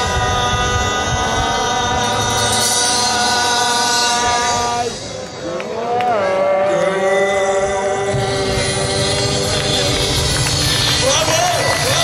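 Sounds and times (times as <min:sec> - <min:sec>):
men singing a long note: 0:00.0 - 0:12.0.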